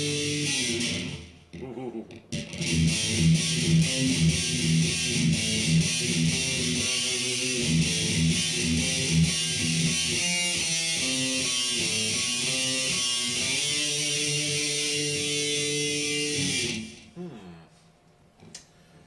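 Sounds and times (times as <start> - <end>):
distorted electric guitar riff: 0.0 - 17.1.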